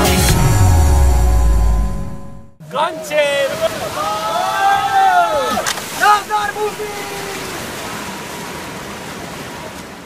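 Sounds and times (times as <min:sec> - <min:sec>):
white water rushing: 0:02.6 - 0:10.0.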